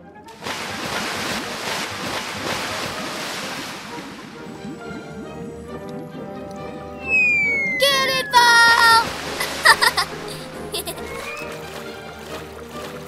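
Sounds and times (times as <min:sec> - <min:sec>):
rushing water: 0:00.3 - 0:13.0
light background music: 0:08.0 - 0:13.0.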